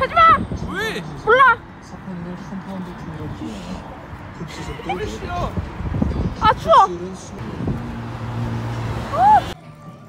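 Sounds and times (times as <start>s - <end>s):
cars passing: 0.0s - 10.0s
low engine hum: 5.6s - 10.0s.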